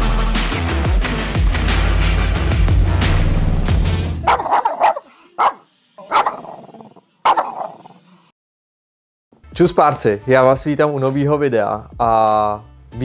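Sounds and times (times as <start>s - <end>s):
music: 0.0s - 4.4s, 9.3s - 13.0s
dog barking with echo: 4.3s - 7.9s.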